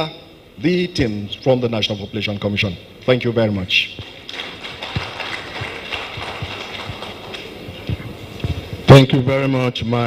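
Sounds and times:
people clapping: 0:04.0 - 0:08.0.

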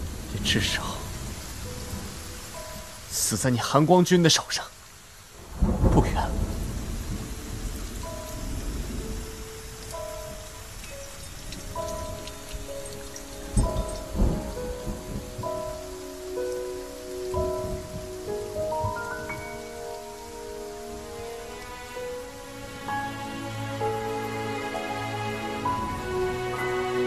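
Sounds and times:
slow soft musical score: 0:00.0 - 0:04.7, 0:05.3 - 0:27.0
heavy rain: 0:00.0 - 0:27.0
thunderclap and rumble: 0:05.3 - 0:16.0, 0:17.3 - 0:19.7.

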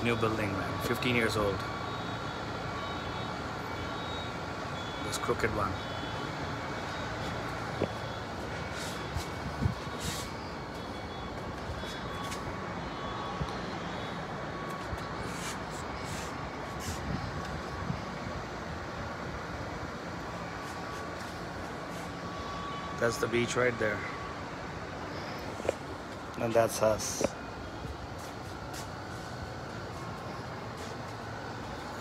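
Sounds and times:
city traffic hum: 0:00.0 - 0:32.0.

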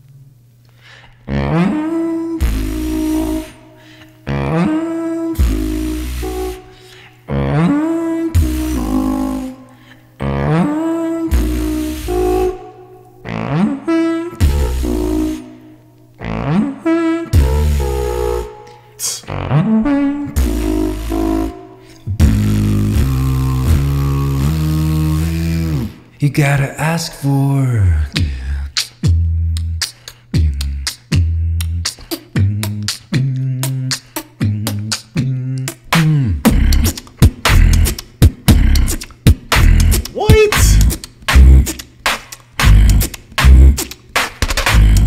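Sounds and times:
held beatboxed bass line: 0:01.2 - 0:45.0
beatboxing vocal percussion: 0:01.3 - 0:15.6, 0:16.2 - 0:18.4, 0:19.0 - 0:45.0.

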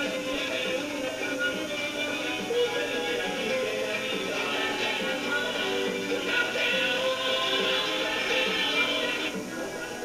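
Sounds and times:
man singing folk song: 0:00.0 - 0:10.0.

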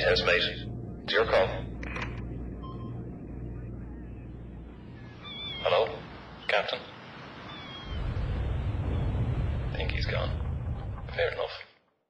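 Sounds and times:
machinery hum: 0:00.0 - 0:11.6.

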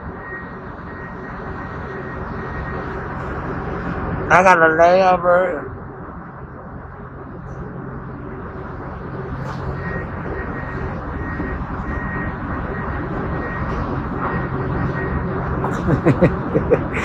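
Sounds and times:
bus engine drone: 0:00.0 - 0:17.0.

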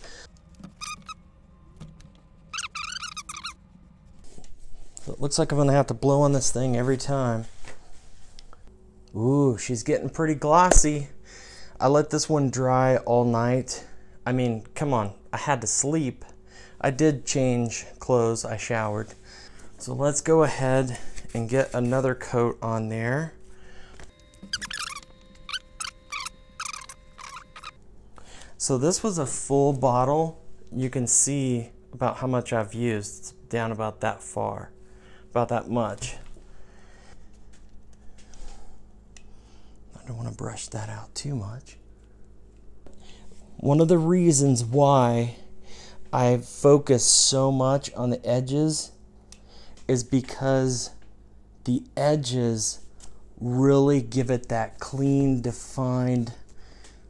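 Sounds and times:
high-pitched warbling squeaks: 0:00.6 - 0:01.3, 0:02.4 - 0:03.6, 0:24.3 - 0:27.8.

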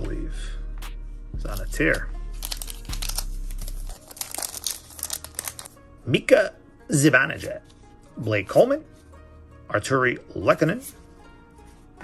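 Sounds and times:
foil wrapper tearing and crinkling: 0:01.5 - 0:05.8.

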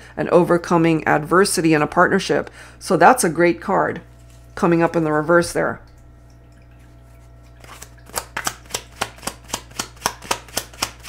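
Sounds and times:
cards being shuffled by hand: 0:07.6 - 0:11.0.

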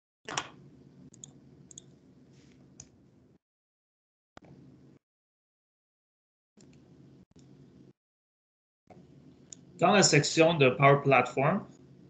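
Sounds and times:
computer mouse clicks: 0:01.1 - 0:01.9.

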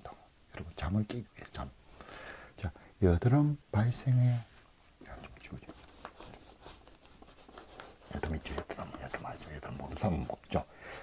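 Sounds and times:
pen scratching on paper: 0:05.7 - 0:10.2.

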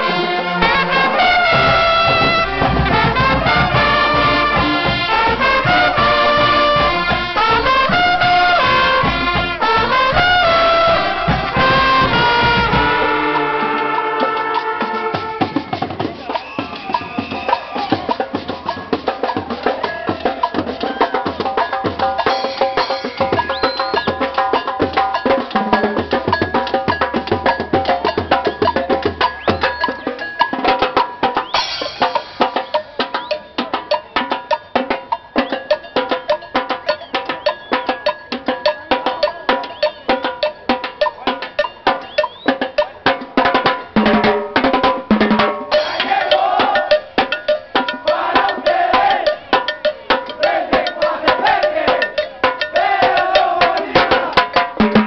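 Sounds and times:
brass playing melody: 0:00.0 - 0:15.9
bass and snare drums: 0:00.0 - 0:55.0.

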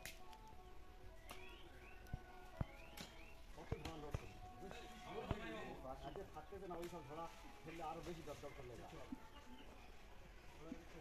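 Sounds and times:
bird whistled call: 0:01.2 - 0:04.4.

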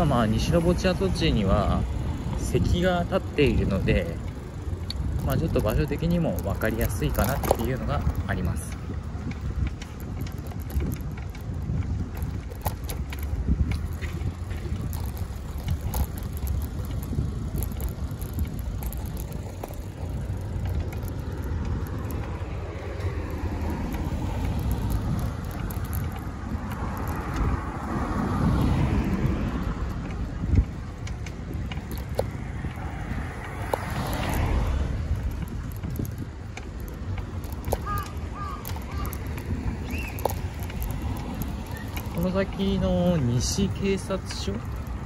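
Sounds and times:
bicycle rattling over bumpy pavement: 0:00.0 - 0:45.0
road traffic passing: 0:00.0 - 0:45.0.

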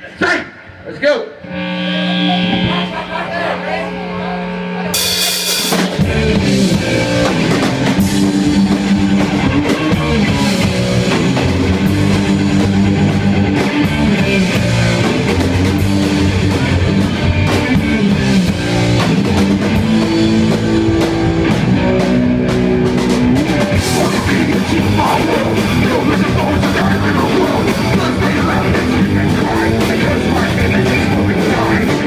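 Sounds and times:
electric guitar chords: 0:00.6 - 0:32.0
drum kit: 0:04.8 - 0:32.0.

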